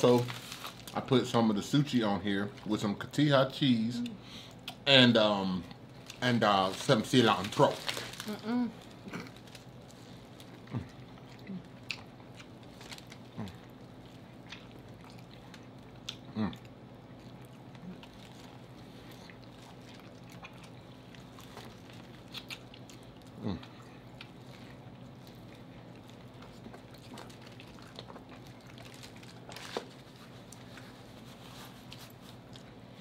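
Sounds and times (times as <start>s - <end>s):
biting and chewing corn: 9.0s - 31.0s.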